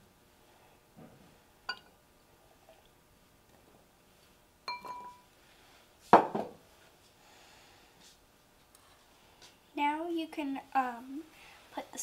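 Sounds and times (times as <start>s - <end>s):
glass bowl knocking on wood: 4.7s - 5.2s.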